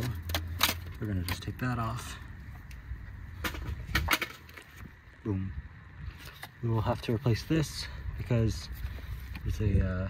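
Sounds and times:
metal parts clicking and knocking: 0.0s - 1.6s
low steady rumble: 0.0s - 10.0s.

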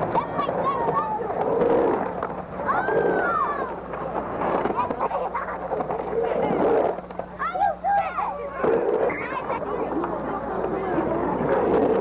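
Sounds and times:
skateboard wheels rolling on pavement: 0.0s - 12.0s
people shouting: 2.6s - 3.8s.

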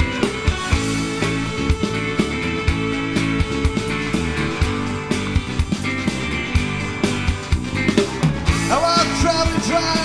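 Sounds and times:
blues rock band playing: 0.0s - 10.0s.

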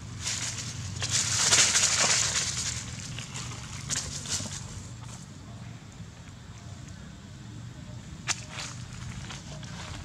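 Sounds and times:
dry leaves and twigs crackling: 0.0s - 5.3s, 8.2s - 10.0s
steady low rumble: 0.0s - 10.0s.

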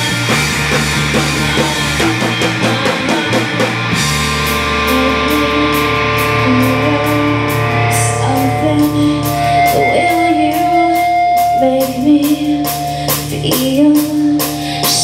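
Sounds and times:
drum kit playing: 0.0s - 15.0s
electric guitar: 0.0s - 15.0s
sustained low note: 2.0s - 12.6s.

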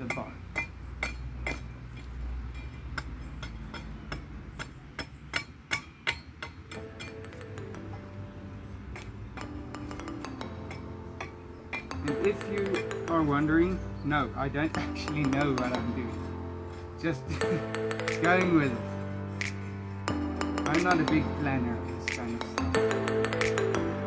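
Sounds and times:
axe chopping wood: 0.0s - 2.2s
background music: 0.0s - 24.0s.

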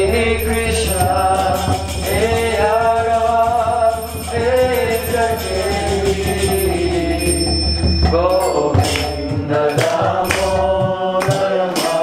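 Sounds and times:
man singing a chant: 0.0s - 7.4s, 8.1s - 12.0s.

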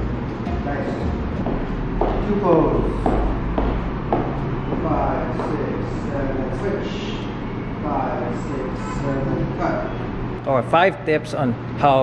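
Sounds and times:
low room hum: 0.0s - 12.0s
high heels clicking on hard floor: 1.4s - 2.3s, 2.9s - 5.6s.

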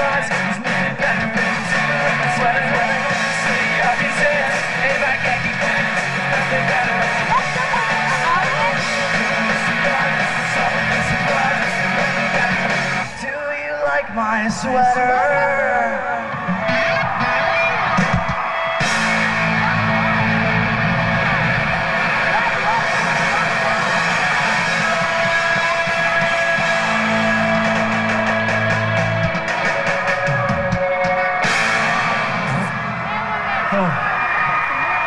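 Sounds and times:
bass notes: 0.0s - 13.1s, 16.3s - 34.0s
crowd shouting: 0.0s - 35.0s
electric guitar notes: 14.9s - 33.4s
drum hits: 16.4s - 32.9s.

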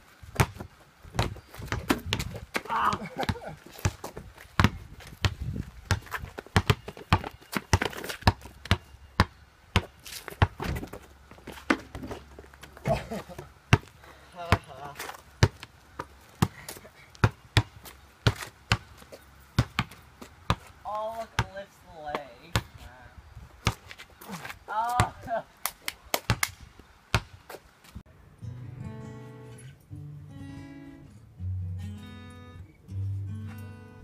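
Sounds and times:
basketball bouncing on asphalt: 0.2s - 21.5s, 23.6s - 25.3s, 26.2s - 26.5s, 27.1s - 27.6s.

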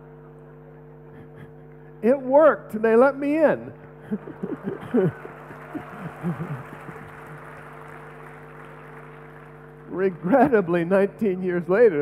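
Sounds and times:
man chuckling at microphone: 0.9s - 2.0s, 4.0s - 7.4s
audience laughing: 4.0s - 7.7s, 10.0s - 10.9s.

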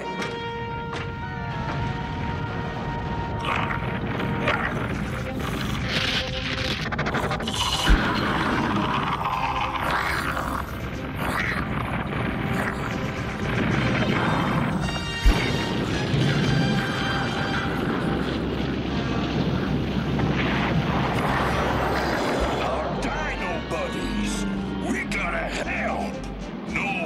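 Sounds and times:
crashing and rumbling battle effects: 0.0s - 25.0s
dramatic action cartoon music: 0.0s - 27.0s
sharp impact: 15.1s - 16.8s.

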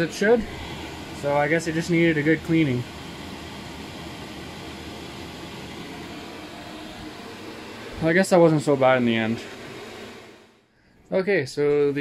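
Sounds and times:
heater blower fan rushing air: 0.0s - 12.0s.

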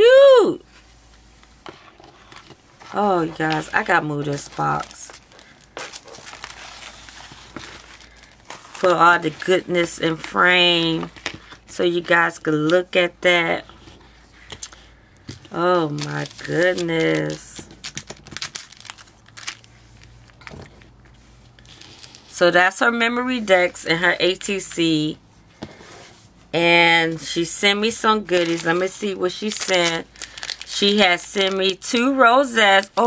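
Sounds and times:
paper and plastic rustling: 1.6s - 12.8s, 13.5s - 22.4s, 27.2s - 33.0s
plastic packaging crinkling: 2.0s - 12.2s, 15.4s - 22.4s, 27.9s - 33.0s.

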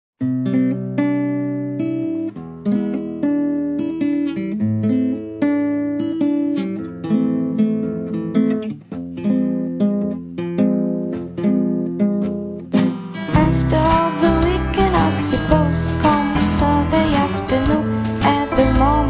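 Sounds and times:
acoustic guitar picking: 0.2s - 19.0s.

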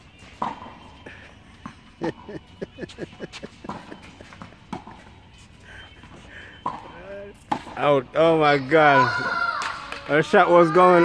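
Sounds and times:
racket hitting tennis ball: 0.2s - 0.8s, 3.4s - 5.1s, 6.6s - 7.8s.

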